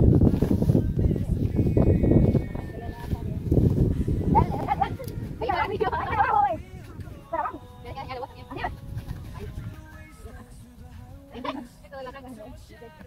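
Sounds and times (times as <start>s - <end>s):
wind rumble on microphone: 0.0s - 11.4s.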